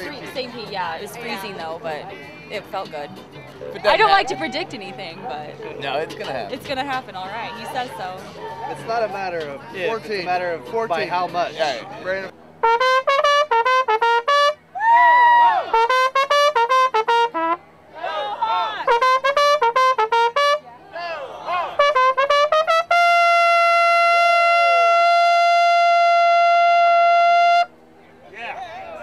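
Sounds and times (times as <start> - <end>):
trumpet playing: 3.7 - 4.8, 12.6 - 14.7, 15.6 - 17.7, 18.8 - 20.7, 21.7 - 27.8.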